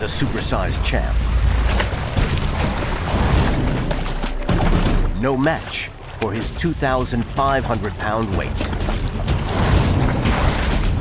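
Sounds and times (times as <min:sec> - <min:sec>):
crocodiles splashing in water: 0:01.2 - 0:04.9.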